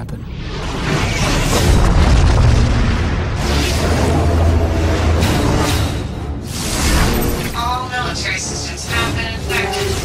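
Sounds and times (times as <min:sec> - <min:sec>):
trailer music: 0:00.1 - 0:10.0
huge explosion boom and rumble: 0:01.4 - 0:04.9.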